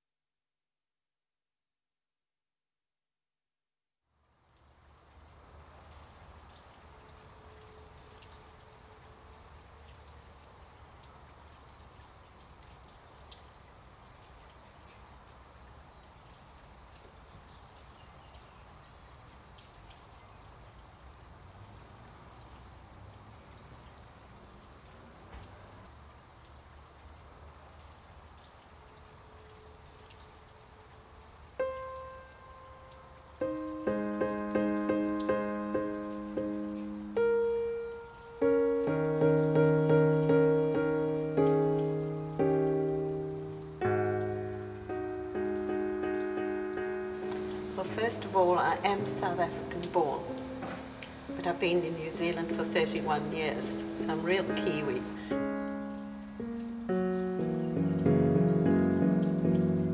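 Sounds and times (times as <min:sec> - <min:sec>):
shrill insect chorus: 0:04.2 - 0:59.9
piano-like music notes: 0:31.6 - 0:59.9.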